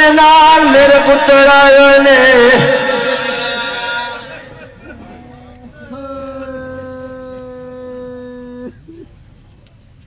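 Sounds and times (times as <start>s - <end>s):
man singing long high note: 0.0s - 4.6s.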